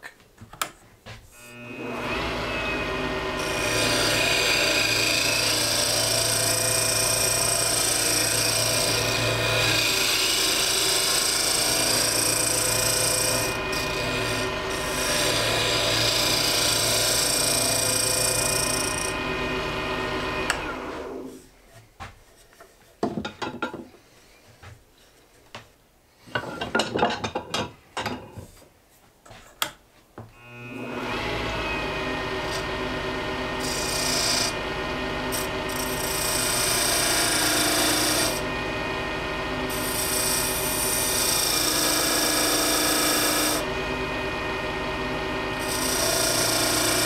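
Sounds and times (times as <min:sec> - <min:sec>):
wood lathe motor humming: 0:01.4 - 0:21.3, 0:30.4 - 0:47.0.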